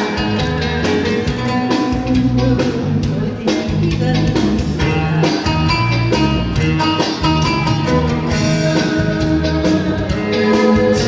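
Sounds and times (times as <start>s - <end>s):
band backing track: 0.0s - 11.0s
woman singing into microphone: 9.4s - 11.0s.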